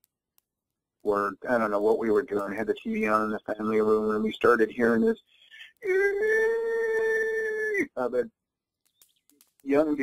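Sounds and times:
wailing cry: 0:05.8 - 0:07.9.

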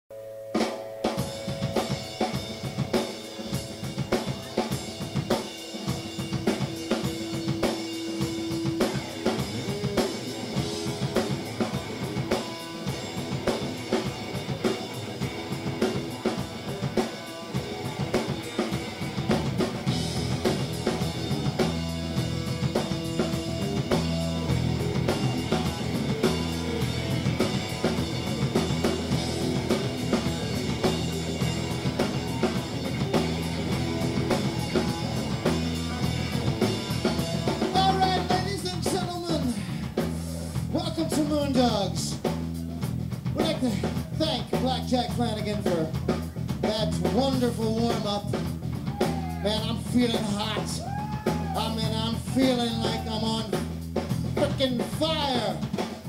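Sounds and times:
electric guitar notes: 0:00.1 - 0:40.2
bass guitar: 0:00.2 - 0:56.0
drum kit groove: 0:00.4 - 0:56.0
live band playing: 0:00.4 - 0:56.0.

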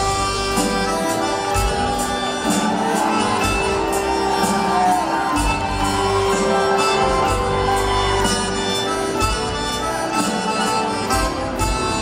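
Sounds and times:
live band playing: 0:00.0 - 0:12.0
reedy accordion melody: 0:00.0 - 0:12.0.

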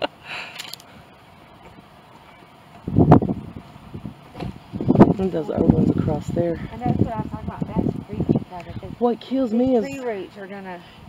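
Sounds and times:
wind buffeting microphone: 0:02.8 - 0:10.0.

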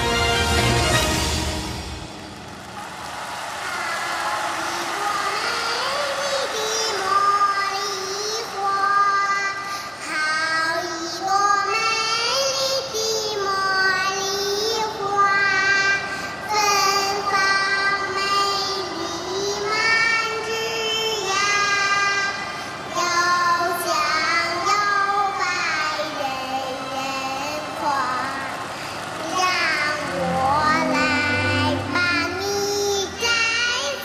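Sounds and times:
high solo voice singing: 0:29.3 - 0:34.0.

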